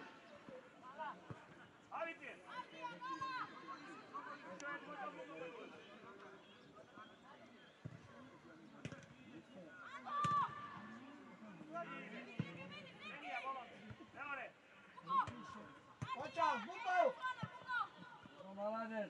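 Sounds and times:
voices shouting: 15.0s - 18.3s.

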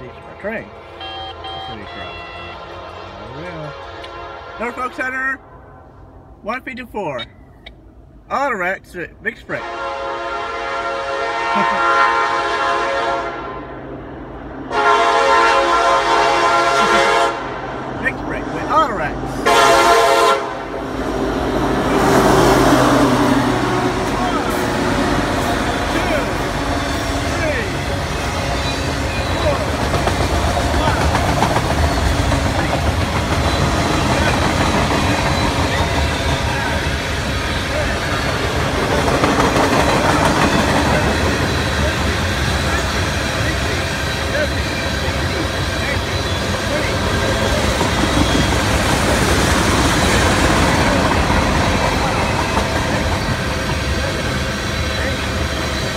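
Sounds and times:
locomotive horn blasts: 0.7s - 5.3s, 9.5s - 13.7s, 14.7s - 17.6s, 19.4s - 20.9s
locomotives passing loudly: 14.1s - 55.9s
freight cars clacking on rails: 21.4s - 55.9s.

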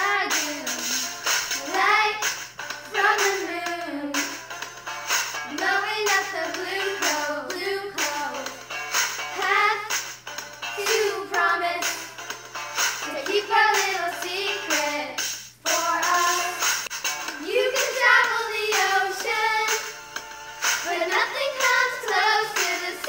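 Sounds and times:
pop song with high vocals: 0.0s - 23.0s.

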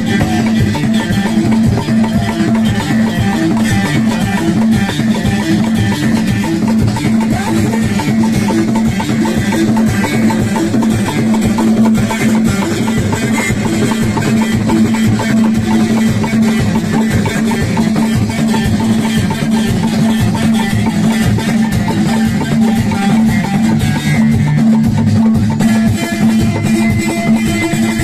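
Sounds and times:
hand drums fast rhythm: 0.0s - 28.0s.

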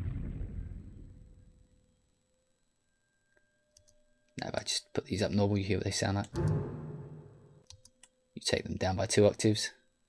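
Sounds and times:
low dark string cluster: 6.3s - 7.6s.

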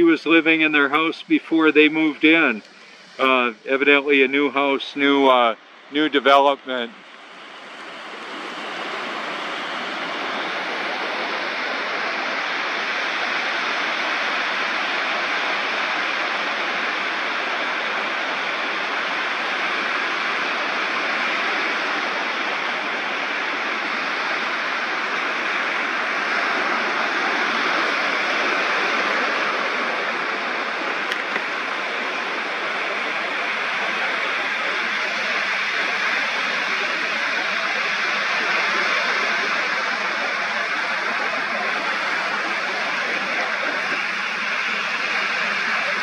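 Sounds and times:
ocean surf breaking on beach: 0.0s - 46.0s.

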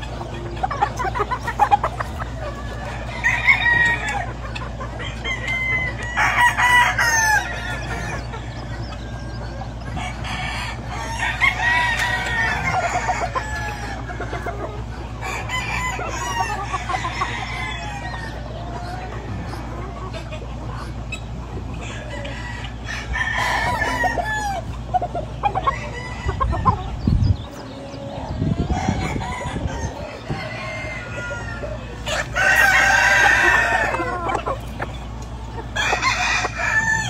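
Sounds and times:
chicken clucking: 0.0s - 37.0s
roosters crowing: 0.0s - 37.0s.

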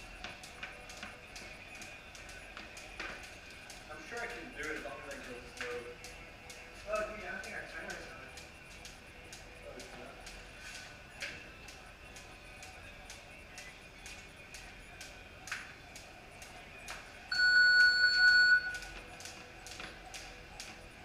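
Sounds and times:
electronic beep: 17.3s - 18.8s.

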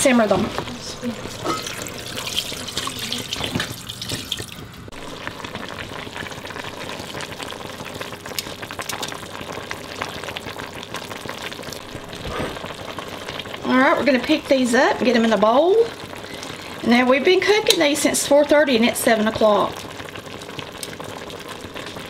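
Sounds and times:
greens moving in broth: 0.0s - 18.0s
water pouring into metal pot: 1.3s - 13.6s.

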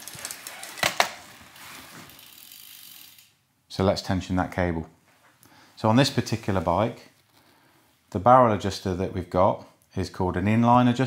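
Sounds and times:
bicycle freehub ticking: 2.1s - 3.3s.

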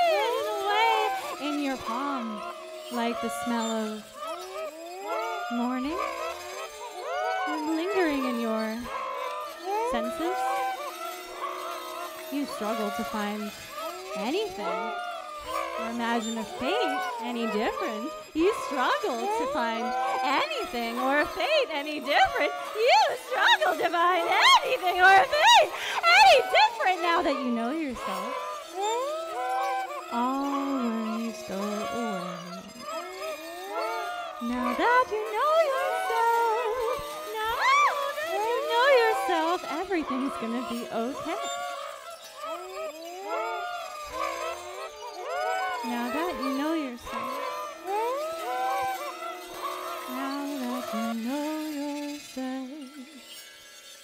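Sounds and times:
processed wordless vocal tones: 0.0s - 54.0s.

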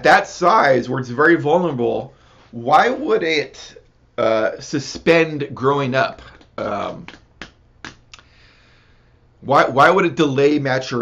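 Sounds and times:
soft breath in: 2.1s - 2.6s, 8.2s - 9.2s
faint mouth clicks: 7.9s - 8.3s.

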